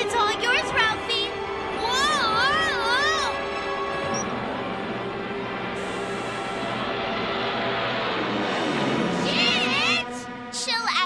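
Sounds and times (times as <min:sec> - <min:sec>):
tense background music: 0:00.0 - 0:11.0
dense rushing noise: 0:04.3 - 0:10.2.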